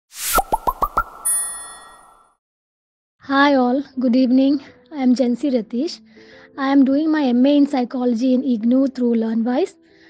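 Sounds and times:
quick whoosh: 0:00.1 - 0:01.8
bubbly pops sliding up: 0:00.3 - 0:01.3
bright ringing chime: 0:01.2 - 0:02.3.

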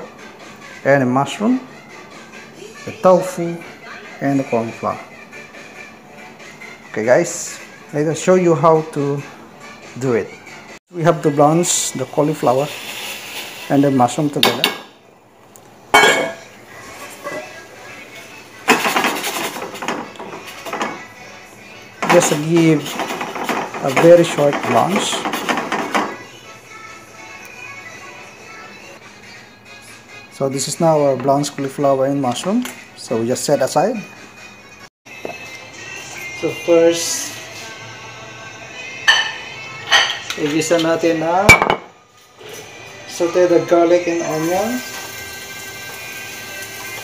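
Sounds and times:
faint background music: 0:00.0 - 0:47.0
saucepan clanking: 0:16.0 - 0:16.5, 0:22.0 - 0:26.2, 0:39.1 - 0:42.0.

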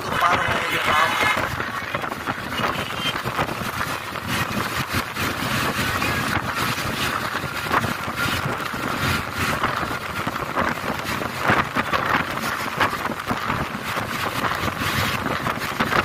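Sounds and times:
vehicle road and engine noise: 0:00.0 - 0:16.0
wind buffeting microphone: 0:00.0 - 0:16.0.

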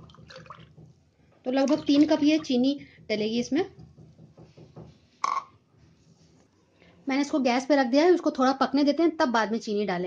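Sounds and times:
juice dripping into a steel pot: 0:00.0 - 0:00.8
plastic cup knocking on counter: 0:00.0 - 0:01.0, 0:03.0 - 0:05.5.

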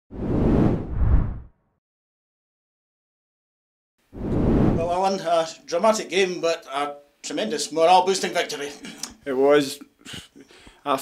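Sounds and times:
whoosh with deep rumble: 0:00.1 - 0:01.5, 0:04.2 - 0:04.9.

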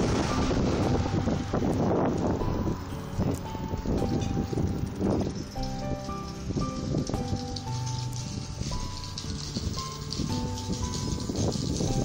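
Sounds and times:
melody of held notes: 0:00.0 - 0:12.0.

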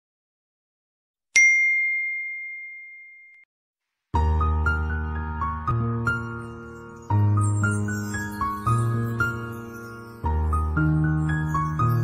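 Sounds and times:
bell-like ding: 0:01.4 - 0:03.5.

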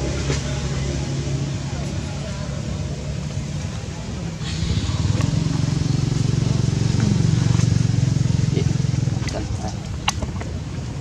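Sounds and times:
motor engine droning: 0:00.0 - 0:11.0.

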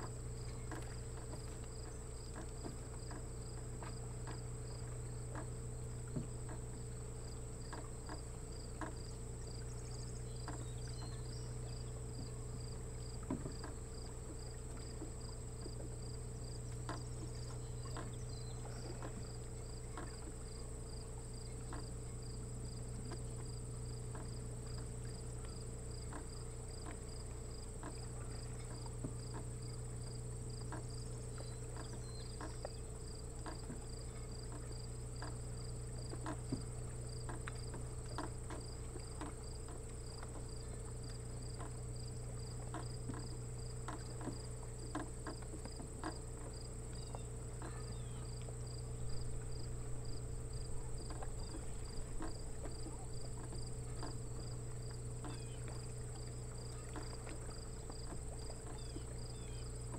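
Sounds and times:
insects trilling: 0:00.0 - 0:59.9
low steady hum: 0:00.0 - 0:59.9
pulsing insect chirp: 0:00.0 - 0:59.9
light ticks: 0:37.3 - 0:41.8.

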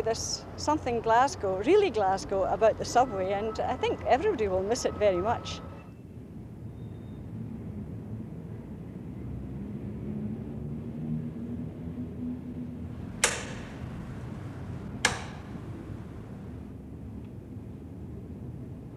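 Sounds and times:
steady low rumble: 0:07.3 - 0:18.9.

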